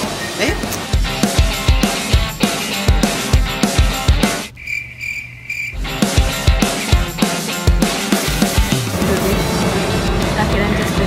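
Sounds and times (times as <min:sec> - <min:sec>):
rock music with heavy drums: 0:00.0 - 0:04.5, 0:05.8 - 0:11.0
cricket chirping sound effect: 0:04.4 - 0:05.9.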